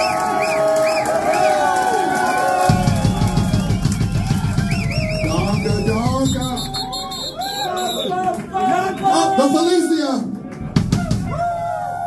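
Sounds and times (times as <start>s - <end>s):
voices shouting: 6.2s - 10.0s.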